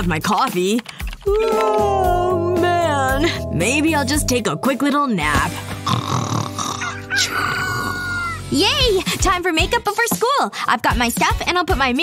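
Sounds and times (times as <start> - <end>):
background music: 0.0 - 12.0
rooster crowing: 6.8 - 8.4.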